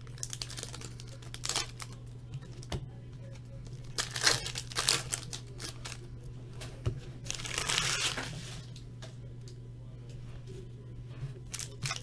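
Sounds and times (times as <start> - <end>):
foil wrapper crinkling: 0.0 - 2.0, 3.7 - 6.1, 7.2 - 8.7, 11.4 - 12.0
low hum: 0.0 - 12.0.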